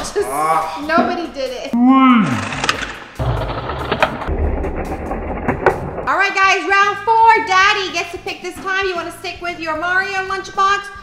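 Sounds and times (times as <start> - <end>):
background music: 0.0 - 11.0
sharp knocks: 2.4 - 6.3
toy car rolling on table: 2.4 - 6.7.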